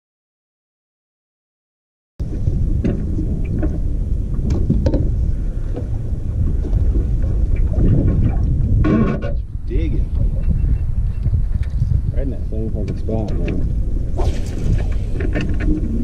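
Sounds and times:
wind buffeting microphone: 2.2 - 16.0.

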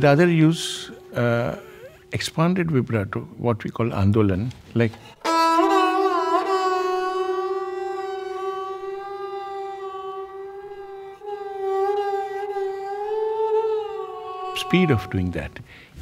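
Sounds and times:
bowed string note with vibrato: 0.0 - 2.6.

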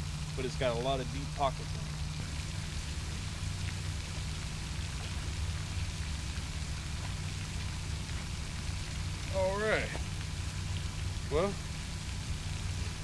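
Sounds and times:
fountain water hissing: 0.0 - 13.0.

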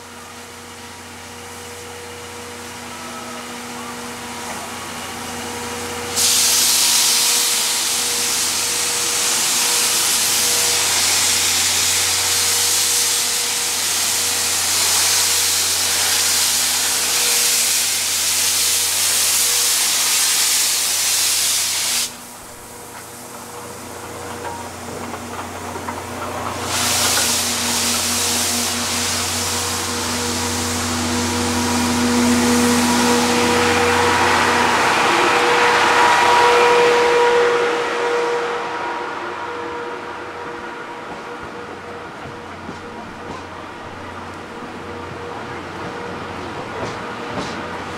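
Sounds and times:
steam hissing from locomotive: 1.4 - 25.1, 26.2 - 38.1.

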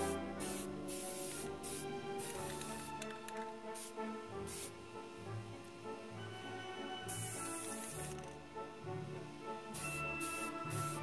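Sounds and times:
aerosol spray can hissing: 0.0 - 4.8, 7.1 - 8.4, 9.7 - 11.0
background music: 0.0 - 11.0.

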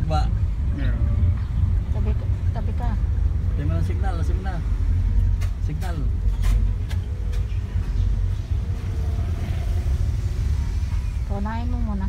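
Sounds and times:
car engine and road rumble: 0.0 - 12.0.

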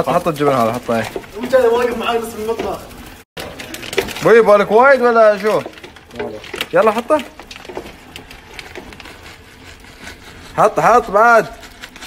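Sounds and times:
utensil scraping in metal pot: 0.0 - 12.0.

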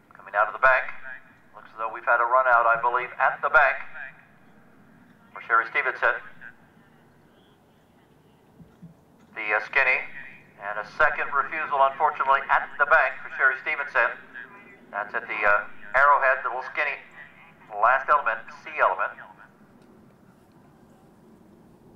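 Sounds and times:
man commentating: 0.1 - 4.2, 5.3 - 6.6, 9.4 - 19.6.

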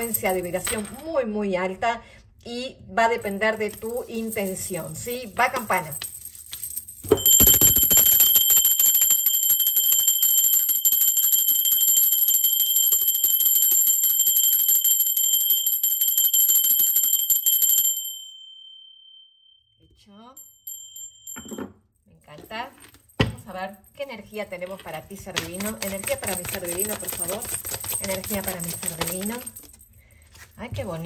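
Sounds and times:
hand bell ringing: 0.0 - 0.8, 3.2 - 19.2, 20.4 - 21.7, 25.4 - 29.9.

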